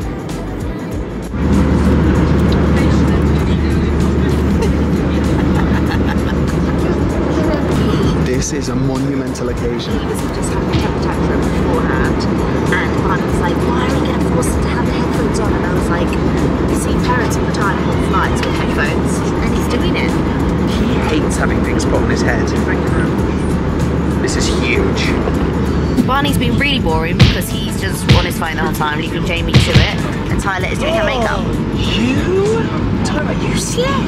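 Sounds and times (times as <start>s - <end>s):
airliner cabin drone: 0.0s - 34.0s
woman talking: 2.4s - 8.2s, 10.0s - 20.4s, 26.0s - 31.5s.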